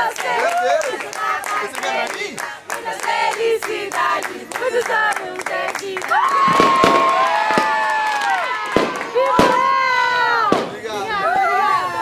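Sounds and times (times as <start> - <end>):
voices: 0.0 - 7.0, 8.3 - 12.0
firework cracks: 6.1 - 11.0
whistling rockets: 6.3 - 10.9.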